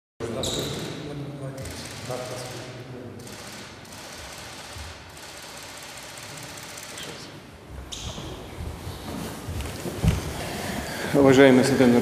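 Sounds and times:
camera shutters clicking: 3.2 - 7.2.

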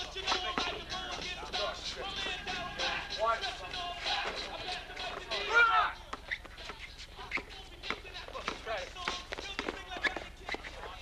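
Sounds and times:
men calling out: 0.0 - 6.1.

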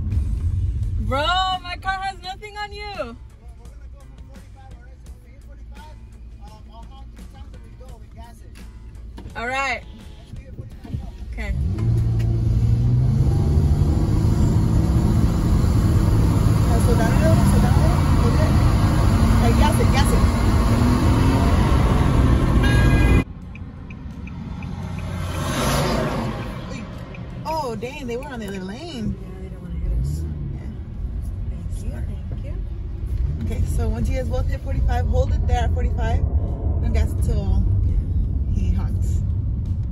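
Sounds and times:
road noise: 0.0 - 39.9
car engine accelerating: 7.1 - 39.9.

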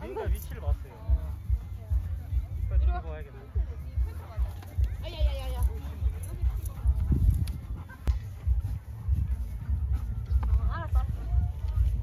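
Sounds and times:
faint voices talking: 0.0 - 12.0
wind buffeting microphone: 3.5 - 12.0.

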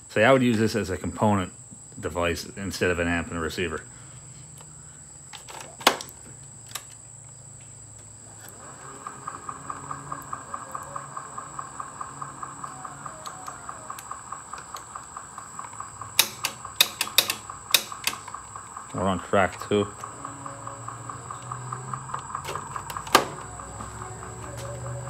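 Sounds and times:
faint even pulsing of tape deck: 0.0 - 25.0.

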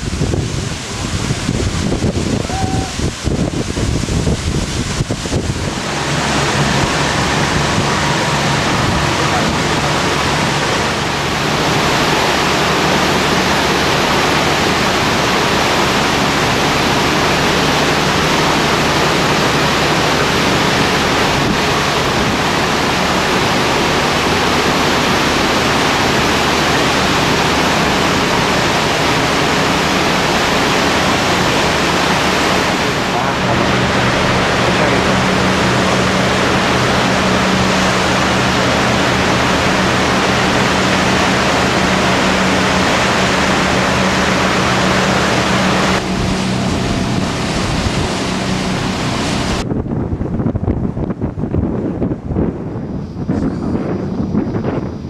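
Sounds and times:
low engine hum: 0.0 - 55.0
rush of water: 0.0 - 55.0
wind buffeting microphone: 0.0 - 55.0.

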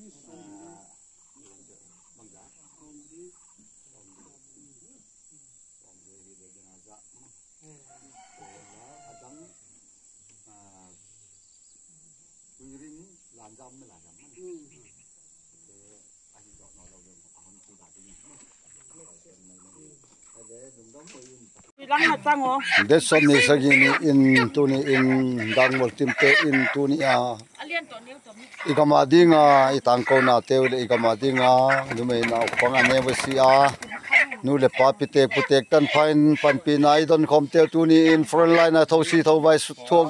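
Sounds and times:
quiet talk: 0.0 - 40.0
distant rooster crowing: 7.8 - 9.8.

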